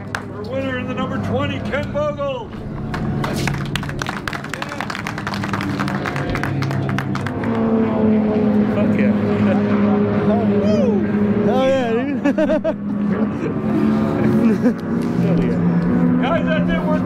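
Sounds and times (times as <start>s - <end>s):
crowd clapping: 0.0s - 0.4s, 2.9s - 7.7s
steady engine hum: 0.0s - 17.0s.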